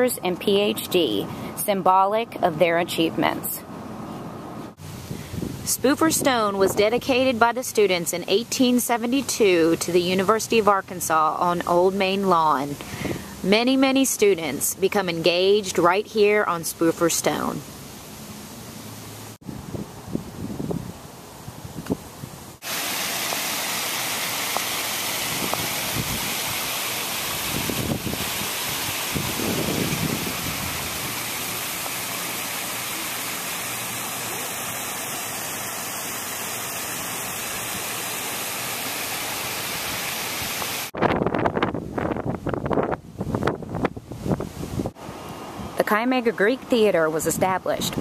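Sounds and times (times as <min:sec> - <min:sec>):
loud rushing hiss: 0:22.4 - 0:41.0.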